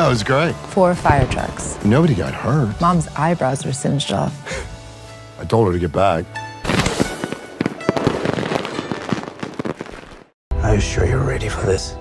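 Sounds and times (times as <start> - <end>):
fireworks fountains crackling: 0.0 - 3.2, 6.7 - 10.4.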